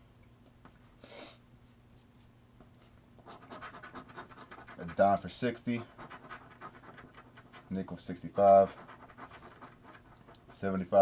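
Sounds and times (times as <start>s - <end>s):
coin scratching a ticket: 3.2s - 10.9s.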